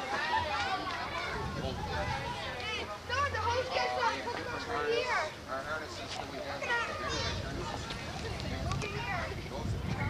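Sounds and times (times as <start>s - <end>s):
children chattering: 0.0s - 10.0s.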